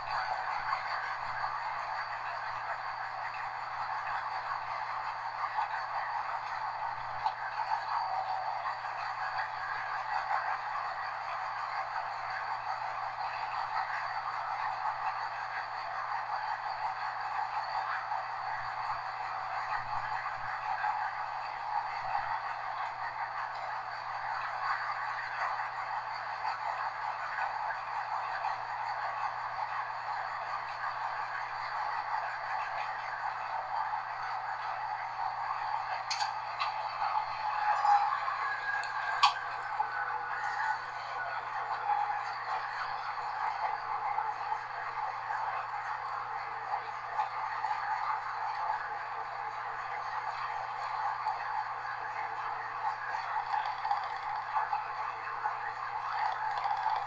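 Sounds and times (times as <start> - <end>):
steady low hum: 0.0 - 57.0
train running noise: 0.0 - 57.0.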